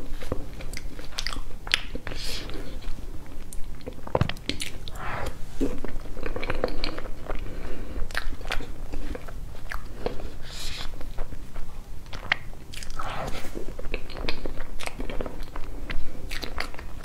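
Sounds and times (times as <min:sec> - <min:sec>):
wet chewing and lip-smacking: 0:00.2 - 0:05.1, 0:05.7 - 0:17.0.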